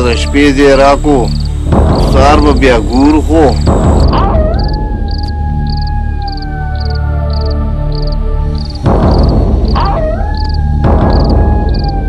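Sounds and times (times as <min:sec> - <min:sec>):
cricket chirps: 0:00.0 - 0:12.0
low drone: 0:00.0 - 0:12.0.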